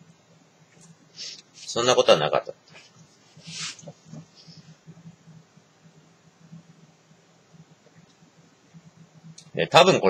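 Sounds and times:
quiet breath: 0:01.1 - 0:01.7, 0:02.7 - 0:05.2.

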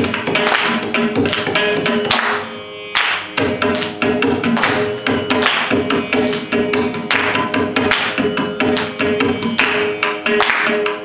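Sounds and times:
bowed violin melody: 0:00.0 - 0:11.0
shruti box drone: 0:00.0 - 0:11.0.

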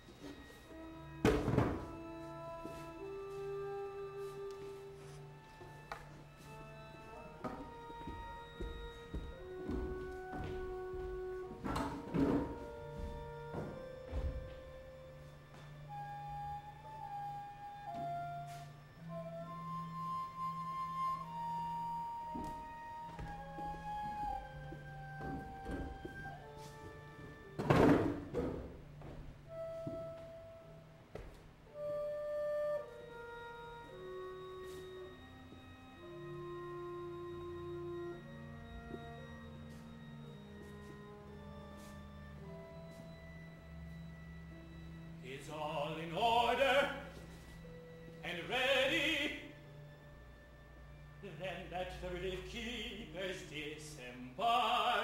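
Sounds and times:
sparse chamber ensemble music: 0:00.0 - 0:55.0.

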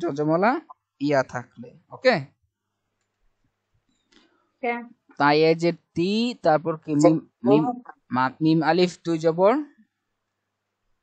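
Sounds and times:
person saying a word: 0:07.0 - 0:07.9.

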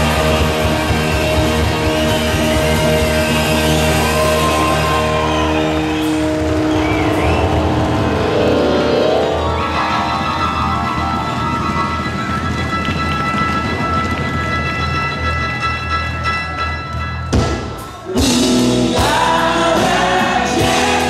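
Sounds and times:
electric bass: 0:00.0 - 0:13.2, 0:18.1 - 0:21.0
live rock band playing: 0:00.0 - 0:21.0.

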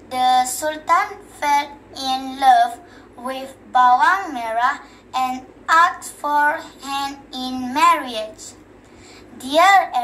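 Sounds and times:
girl singing unaccompanied: 0:00.0 - 0:08.6, 0:09.4 - 0:10.0.

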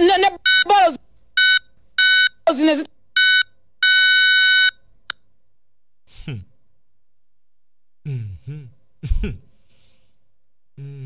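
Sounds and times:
electronic beep tones: 0:00.5 - 0:00.7.

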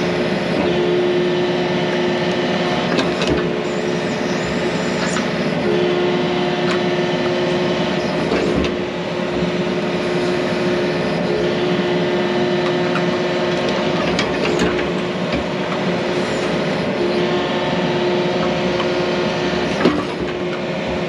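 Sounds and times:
excavator diesel engine and hydraulics: 0:00.0 - 0:21.0.

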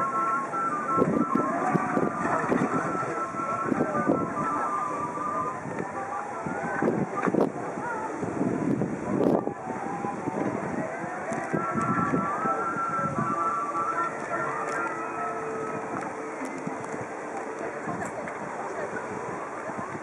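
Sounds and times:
faint distant voices: 0:00.0 - 0:20.0
thin wavering tones: 0:00.0 - 0:20.0
wind buffeting microphone: 0:00.0 - 0:20.0.

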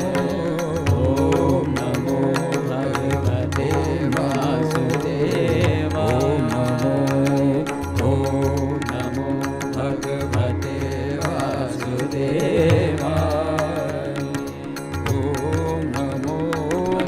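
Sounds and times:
man singing ornamented melody: 0:00.0 - 0:17.0.

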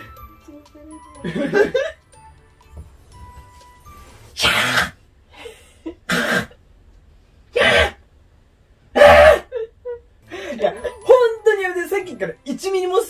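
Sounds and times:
person sneezing or coughing: 0:04.4 - 0:05.0, 0:06.1 - 0:06.6, 0:07.5 - 0:08.0, 0:09.0 - 0:09.5.

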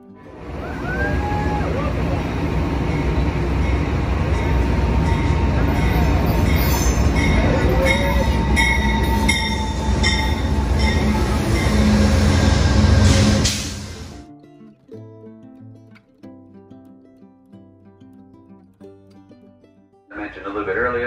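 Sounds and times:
diesel locomotive engine rumble: 0:00.3 - 0:14.2
wheels and brakes squealing: 0:02.9 - 0:14.0.

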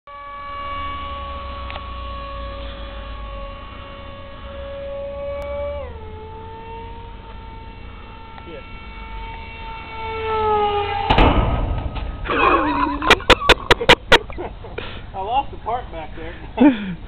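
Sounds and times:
model jet motor whine: 0:00.1 - 0:11.2.

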